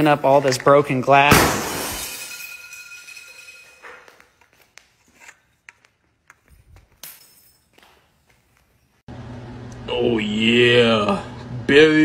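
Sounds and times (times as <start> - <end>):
glass pieces clinking: 1.8 - 4.4, 6.9 - 7.8.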